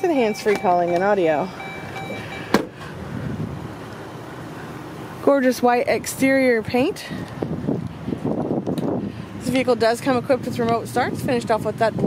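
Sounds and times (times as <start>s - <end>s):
outdoor background noise: 0.0s - 12.0s
car door shutting: 1.6s - 2.9s.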